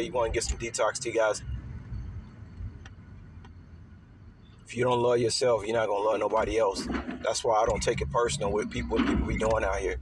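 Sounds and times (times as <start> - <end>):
low vehicle rumble: 0.0 - 10.0.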